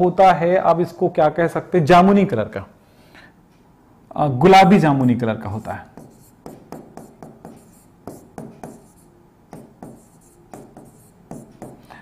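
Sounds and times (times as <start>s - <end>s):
hand writing on a board: 4.6s - 12.0s.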